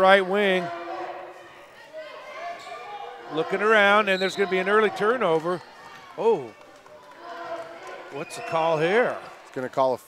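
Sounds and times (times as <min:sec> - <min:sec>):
gymnasium crowd hubbub: 0:00.0 - 0:10.0.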